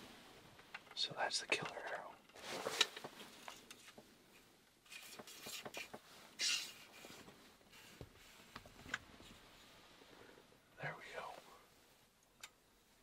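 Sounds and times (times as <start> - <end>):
clothing rustling: 2.3 - 10.3.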